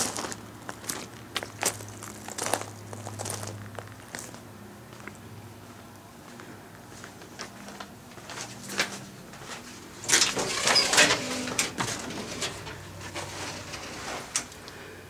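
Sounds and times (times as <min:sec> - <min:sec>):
metal door rattling and scraping: 0:10.0 - 0:14.6.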